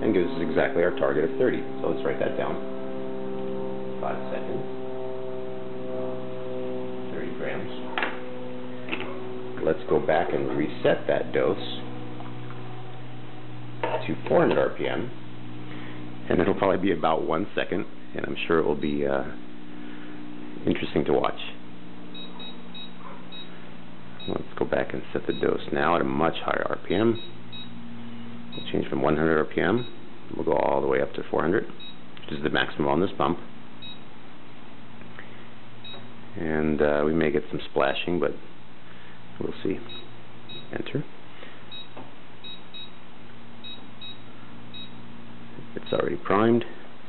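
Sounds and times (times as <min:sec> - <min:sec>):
low electrical hum: 0:00.0 - 0:47.0
high electronic keypad beep: 0:22.2 - 0:23.5, 0:41.7 - 0:43.0, 0:43.6 - 0:45.0.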